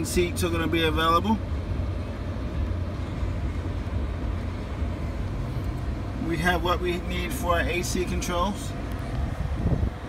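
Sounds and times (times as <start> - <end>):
low rumble in truck cab: 0.0 - 10.0.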